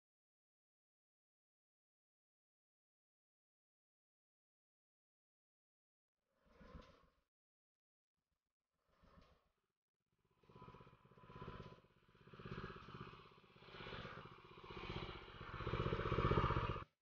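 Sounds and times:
small engine running: 10.3s - 17.0s.

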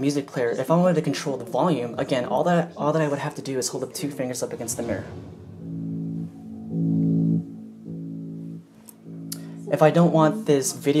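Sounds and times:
trailer music with low notes: 4.5s - 9.7s.

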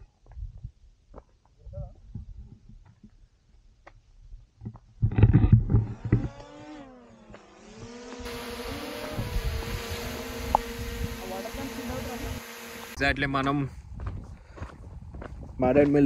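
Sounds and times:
wind rumble on microphone: 0.0s - 1.0s, 1.6s - 2.9s, 9.0s - 12.0s, 13.6s - 16.0s
drone propellers whining: 5.8s - 13.0s.

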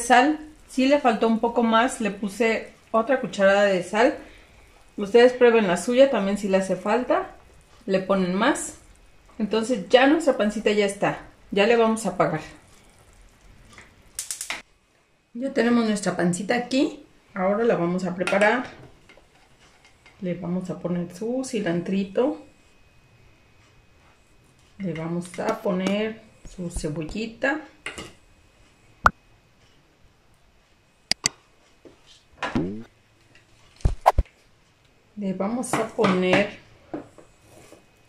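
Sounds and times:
woman's voice: 0.0s - 4.2s, 5.0s - 8.8s, 9.4s - 12.6s, 15.4s - 18.7s, 20.2s - 22.5s, 24.8s - 27.8s, 35.2s - 36.6s
pot simmering: 0.0s - 14.5s
sharp clicks: 31.1s - 31.4s.

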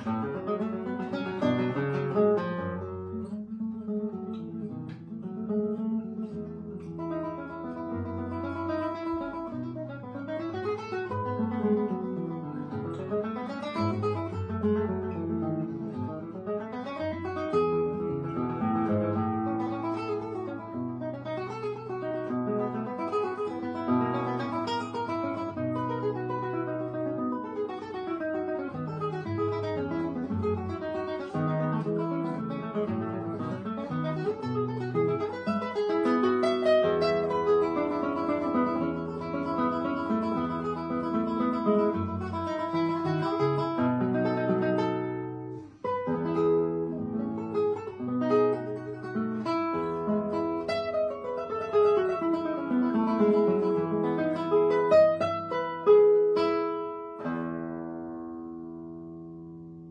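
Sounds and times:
solo classical guitar: 0.0s - 59.9s.

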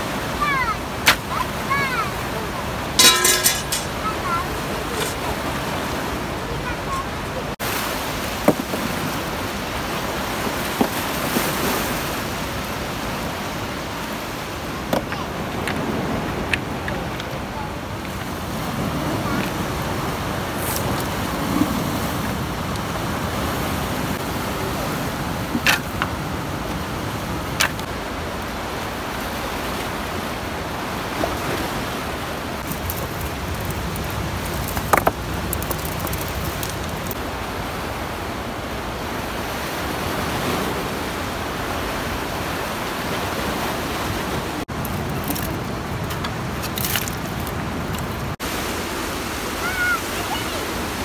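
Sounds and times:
river water rushing: 0.0s - 46.6s, 47.2s - 51.0s
dry brushwood crackling: 32.6s - 37.2s, 44.7s - 48.3s
stones knocking together: 32.6s - 37.2s.

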